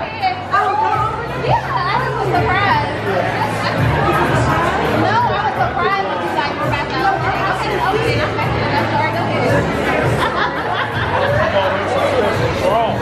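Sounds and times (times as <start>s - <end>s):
background music with bass line: 0.0s - 13.0s
people chattering: 0.0s - 13.0s.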